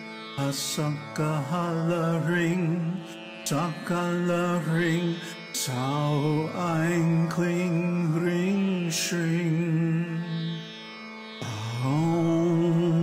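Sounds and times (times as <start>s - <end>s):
person singing a mantra: 0.4s - 10.6s, 11.4s - 13.0s.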